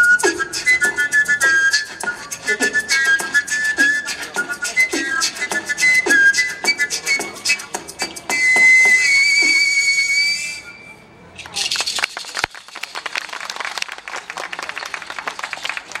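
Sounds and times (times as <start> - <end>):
wooden pipe whistling note: 0.0 - 11.5
audience applauding: 11.7 - 16.0.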